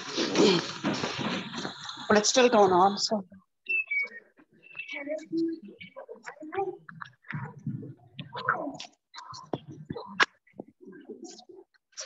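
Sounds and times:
indistinct speech and whispering: 4.0s - 12.0s.

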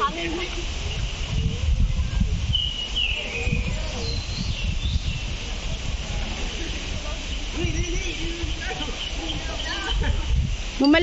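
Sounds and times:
low rumble on microphone: 0.0s - 10.8s.

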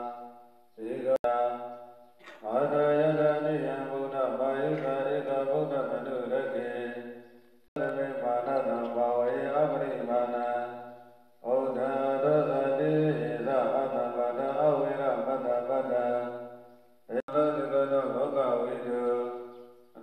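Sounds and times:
melodic chanting: 0.0s - 20.0s.

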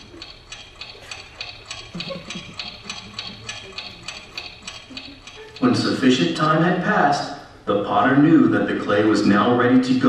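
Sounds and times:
clock ticking: 0.0s - 7.4s.

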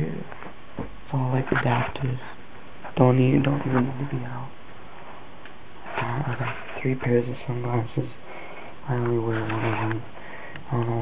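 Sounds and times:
man talking: 0.0s - 0.4s, 1.0s - 4.6s, 5.9s - 11.0s
room hiss: 0.0s - 11.0s.

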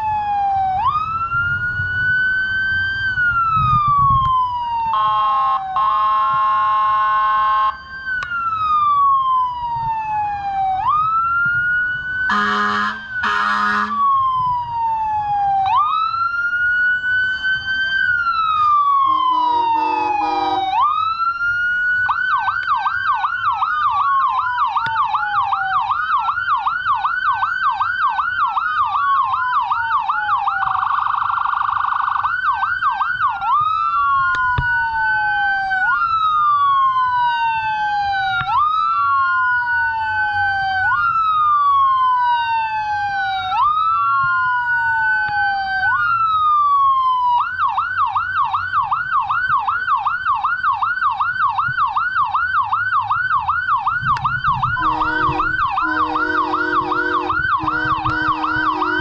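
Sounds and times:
emergency vehicle siren: 0.0s - 59.0s
horn blast: 12.3s - 14.0s, 19.0s - 20.8s, 54.8s - 59.0s.

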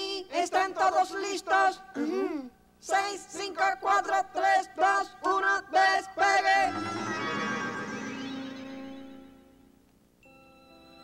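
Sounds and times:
shimmering synthesizer teleport effect: 6.7s - 9.6s.

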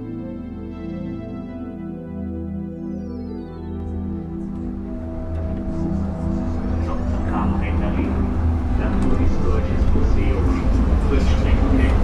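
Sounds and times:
held musical tones: 0.0s - 12.0s
indistinct voices: 4.5s - 12.0s
low traffic rumble: 4.5s - 12.0s.

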